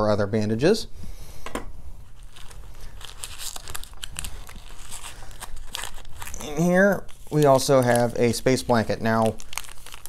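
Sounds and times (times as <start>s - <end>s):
plastic packaging crinkling: 2.0s - 10.0s
hands rummaging in nylon pouch: 2.1s - 10.0s.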